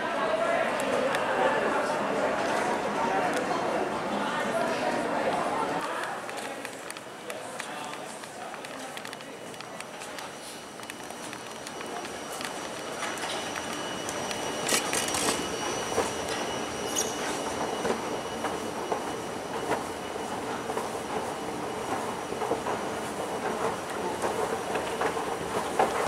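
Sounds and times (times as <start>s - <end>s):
high squeals: 11.1s - 20.4s.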